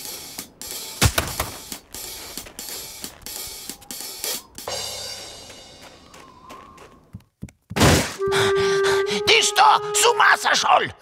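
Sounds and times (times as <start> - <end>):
loud sudden thunk: 7.8 - 8.2
steady high tone: 8.2 - 11.0.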